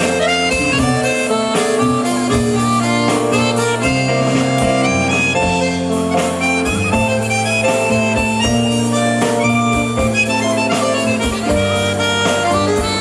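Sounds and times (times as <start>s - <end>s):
accordion slow melody: 0.0s - 13.0s
drums: 0.0s - 13.0s
electric guitar: 0.0s - 13.0s.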